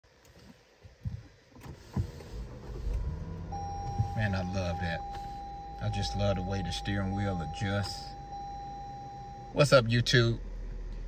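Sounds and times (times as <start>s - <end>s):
thin steady electronic tone: 3.5s - 9.9s.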